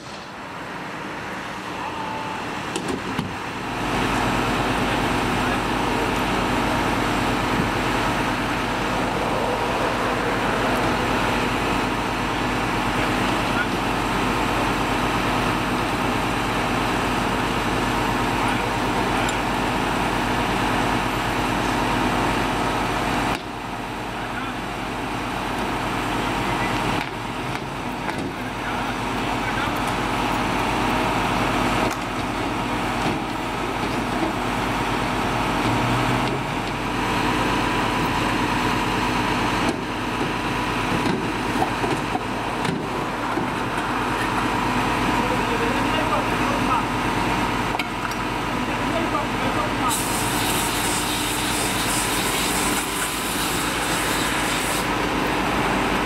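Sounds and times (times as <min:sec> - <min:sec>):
machine running: 0:01.5 - 0:23.0
faint voices: 0:01.6 - 0:02.6.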